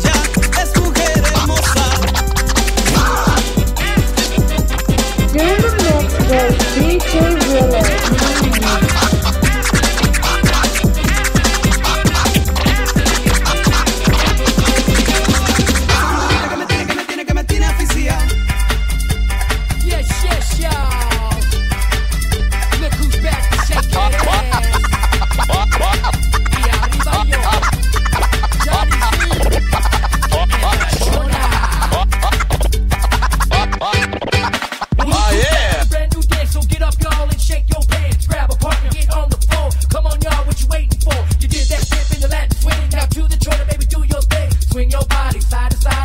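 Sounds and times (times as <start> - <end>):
turntable scratching: 0.0 - 17.1, 22.6 - 35.9
fast electronic dance music: 0.0 - 17.2, 22.5 - 36.6
heavy bass beat: 0.0 - 46.0.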